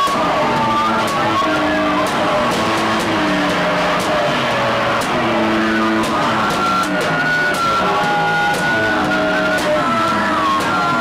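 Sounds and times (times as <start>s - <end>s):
sliding synthesizer tones: 0.0s - 11.0s.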